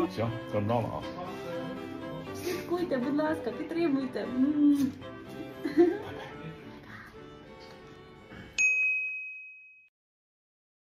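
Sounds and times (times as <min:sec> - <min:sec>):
bright chime ding: 0:08.6 - 0:09.9.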